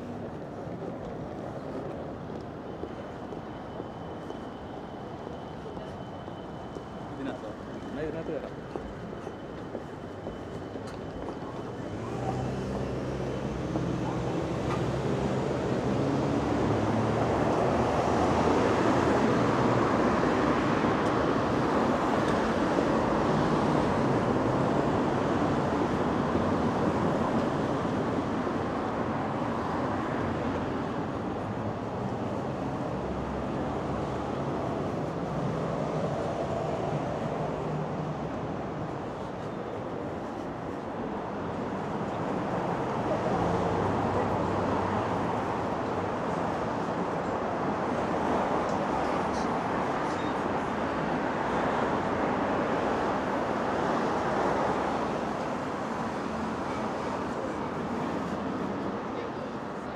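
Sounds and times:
road traffic passing: 11.2 - 59.9.

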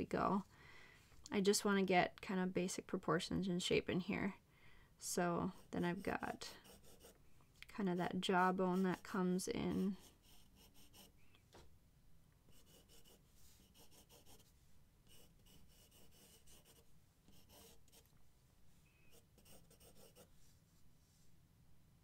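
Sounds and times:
pencil sketching on paper: 5.5 - 7.2, 7.8 - 11.1, 12.5 - 14.5, 15.1 - 18.1, 19.1 - 20.4.

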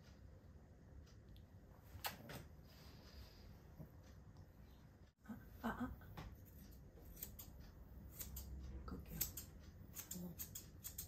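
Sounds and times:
scissors snipping hair: 6.3 - 11.0.

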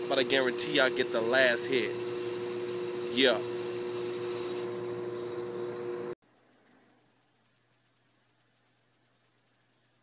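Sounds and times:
machine hum and hiss: 0.0 - 10.0.

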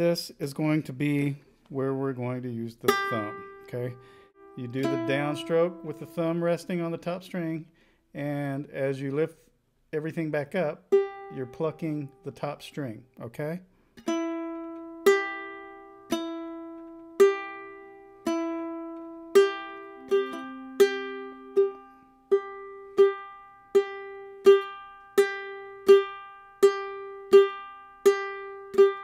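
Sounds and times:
ukulele plucked notes: 2.8 - 7.6, 10.0 - 12.5, 14.0 - 29.0.

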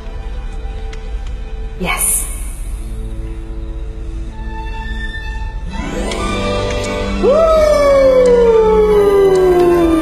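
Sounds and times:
long howl gliding down: 7.2 - 10.0.

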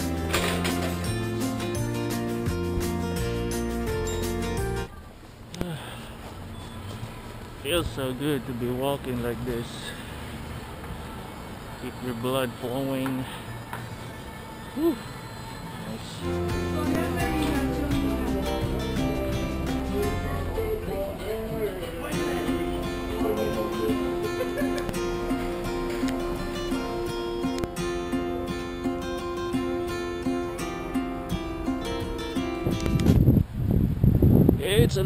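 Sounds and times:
background music: 0.0 - 4.9, 13.2 - 33.1.

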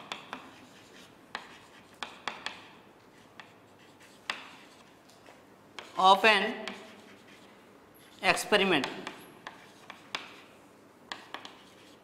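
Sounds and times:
chalk tapping on blackboard: 0.0 - 4.9, 5.8 - 6.0, 6.6 - 8.2, 8.8 - 10.5, 11.1 - 12.0
chalk scratching: 0.0 - 5.0, 5.8 - 8.4, 9.0 - 10.5, 11.1 - 12.0.

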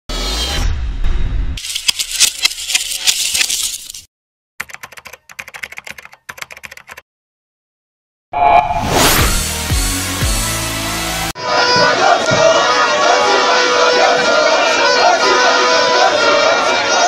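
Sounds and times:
keyboard typing clicks: 4.6 - 7.0.

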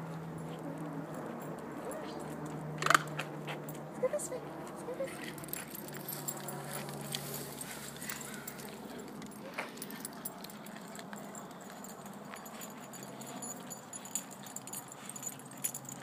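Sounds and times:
collar tags jingling: 0.0 - 16.0.

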